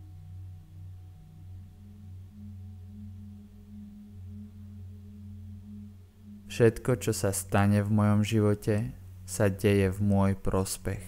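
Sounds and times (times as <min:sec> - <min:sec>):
meditative drone: 0:00.0 - 0:11.0.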